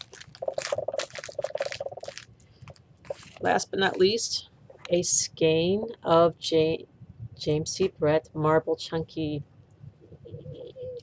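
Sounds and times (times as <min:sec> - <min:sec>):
gift packaging rustling: 0:00.0 - 0:04.2.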